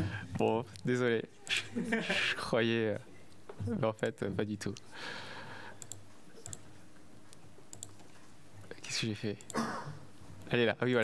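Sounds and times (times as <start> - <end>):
quiet computer clicks: 5.7 - 6.7, 7.3 - 9.6.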